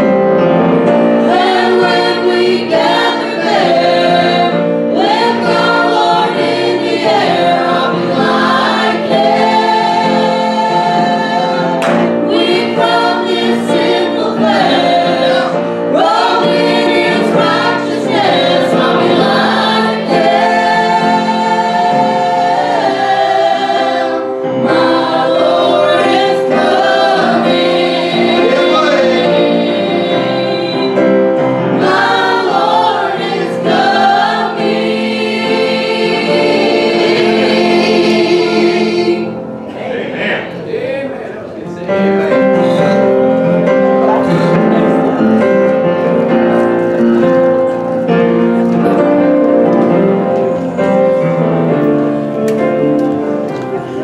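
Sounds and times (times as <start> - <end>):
youth choir singing gospel: 0.0 - 54.0.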